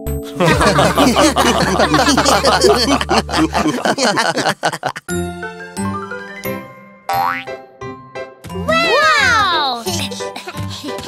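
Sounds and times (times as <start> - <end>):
children's cartoon music: 0.0 - 11.0.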